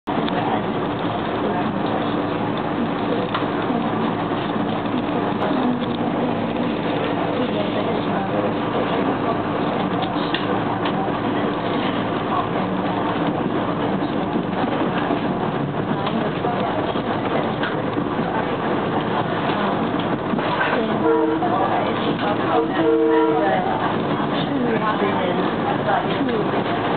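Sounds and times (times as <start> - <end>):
train wheels rumbling on rails: 0.0 - 26.9.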